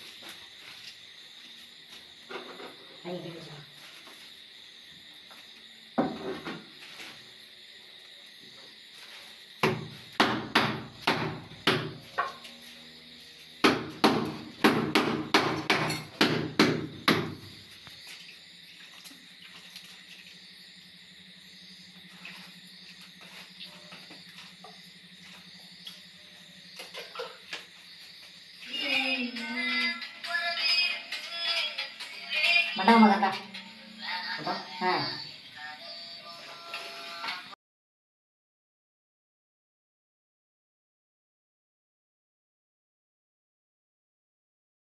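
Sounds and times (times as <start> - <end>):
dull knocks on stone slab: 9.6 - 12.0
music with voice: 28.7 - 36.7.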